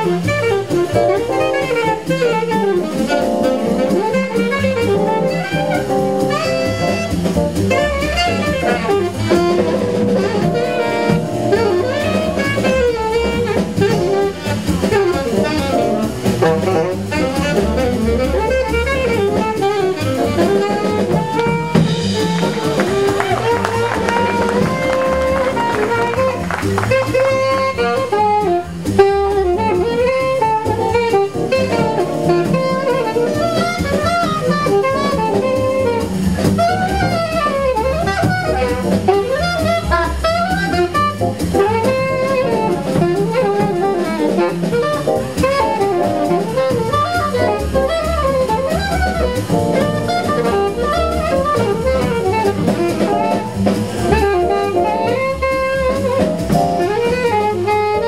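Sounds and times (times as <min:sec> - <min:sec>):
drum kit: 0:00.0 - 0:58.0
piano: 0:00.0 - 0:58.0
saxophone solo: 0:00.0 - 0:58.0
upright bass: 0:00.0 - 0:58.0.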